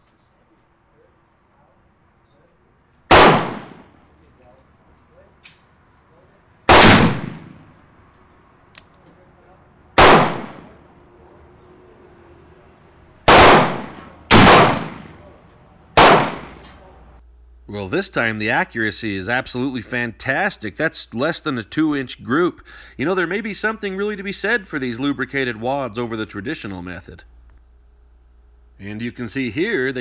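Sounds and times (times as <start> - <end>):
gunshot echo: 3.1 - 4.0, 6.7 - 7.7, 10.0 - 10.8, 13.3 - 15.3, 16.0 - 16.8
revolver shots: 13.3 - 15.2, 16.0 - 16.7.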